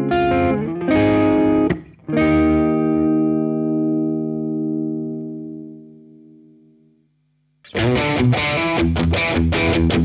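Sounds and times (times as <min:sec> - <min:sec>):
overdriven electric guitar chord: 0:00.0 - 0:10.0.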